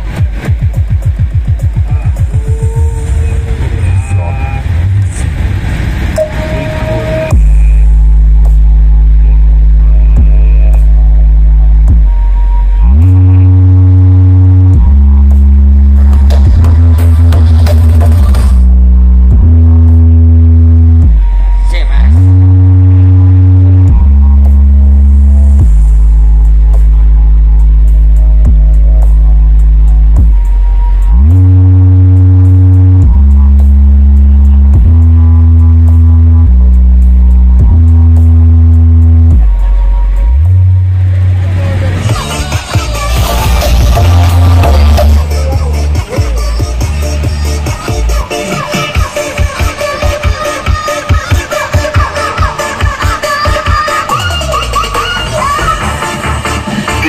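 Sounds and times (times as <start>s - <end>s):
fast pulsing beat: 0.0s - 12.7s, 13.4s - 20.1s, 23.7s - 31.2s, 41.5s - 57.0s
deep bass notes: 0.0s - 53.1s
music on loud speaker rig: 0.0s - 57.0s.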